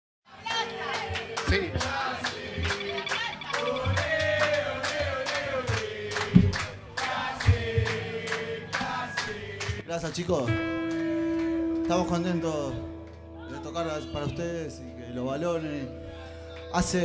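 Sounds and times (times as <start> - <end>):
live rock band playing: 0.4 - 4.4.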